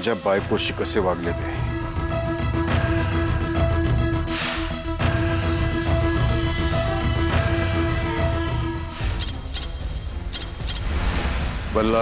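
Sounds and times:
high metallic jingles: 9.1s - 10.9s.

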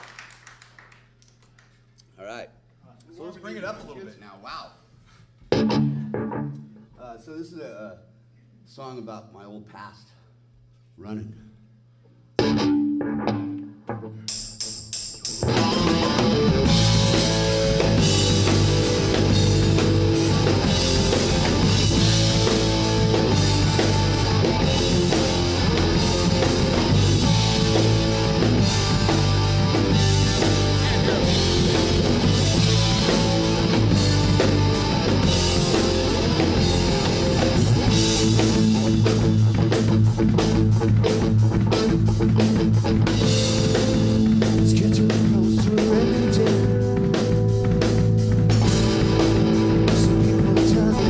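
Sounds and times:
drum kit beat: 5.5s - 6.8s, 12.4s - 51.0s
electric guitar chords ringing: 5.5s - 6.8s, 12.4s - 13.8s, 15.4s - 51.0s
electric bass: 15.4s - 51.0s.

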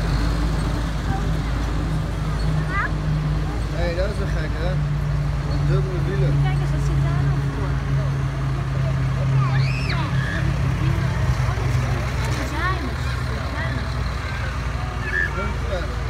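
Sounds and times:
people chattering: 0.0s - 16.0s
tractor diesel engine running: 0.0s - 16.0s.

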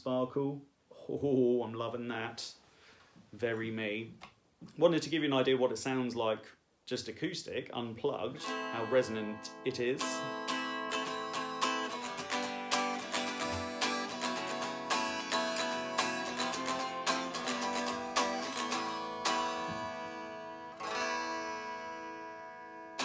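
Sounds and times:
unplugged electric guitar strummed: 8.4s - 23.0s.

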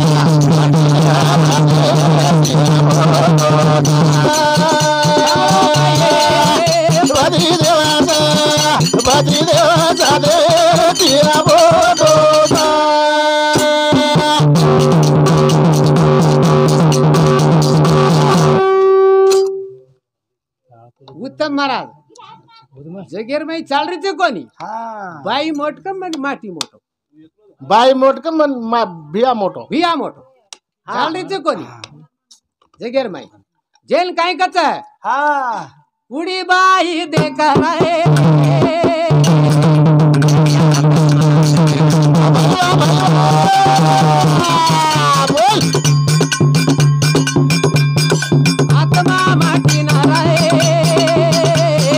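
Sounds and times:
drum strokes: 0.0s - 19.6s, 37.1s - 51.9s.

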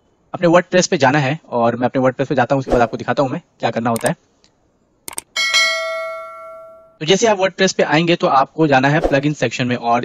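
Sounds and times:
mouse clicks: 4.0s - 4.2s, 5.1s - 5.3s
bright bell ding: 5.3s - 7.0s.

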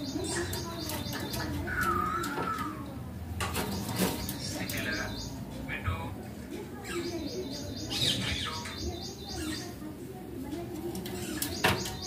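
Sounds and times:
parrot chirping and squeaking: 11.1s - 11.6s.

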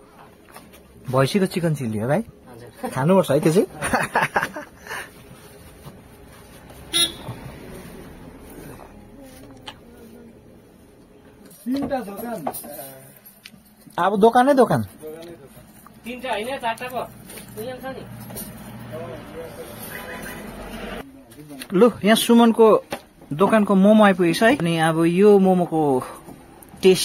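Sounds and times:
low background noise: 0.0s - 27.0s
vehicle passing on highway: 6.0s - 9.2s, 17.0s - 21.1s
vehicle horn toot: 6.9s - 7.4s, 19.8s - 20.7s.

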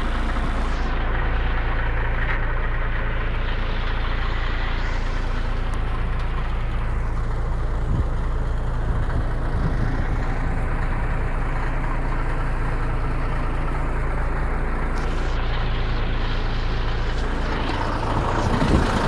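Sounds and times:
diesel engine idling: 0.0s - 19.0s.

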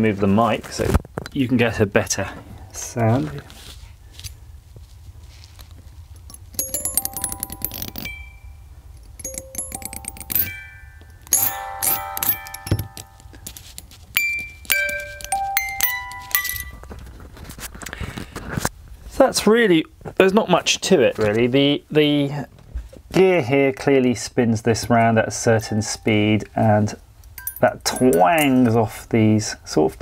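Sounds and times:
music box playing: 6.3s - 17.1s.

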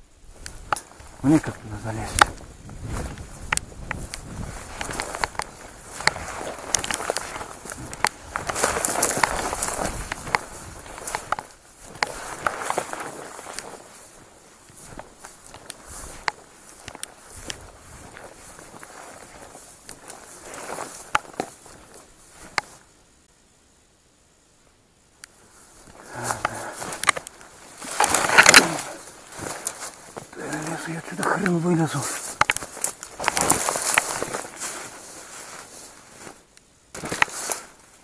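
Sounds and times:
branches scraping clothing: 0.0s - 22.9s, 25.3s - 38.0s
footsteps through dry grass: 0.0s - 23.2s, 25.1s - 38.0s
twigs snapping: 0.4s - 22.8s, 25.2s - 37.7s.

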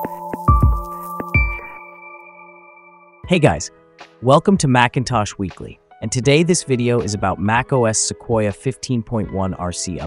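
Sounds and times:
bell-like chord: 0.0s - 3.2s
electronic jingle hits: 0.0s - 3.2s.

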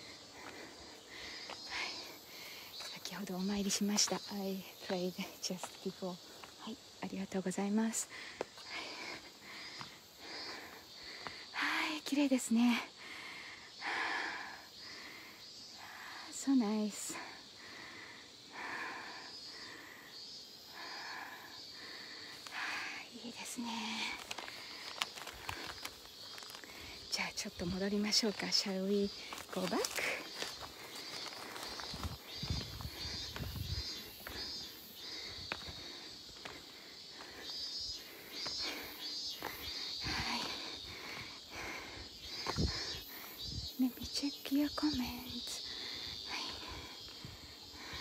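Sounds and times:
footsteps on a path: 0.0s - 4.5s, 23.6s - 43.2s
cicadas buzzing: 0.0s - 48.0s.

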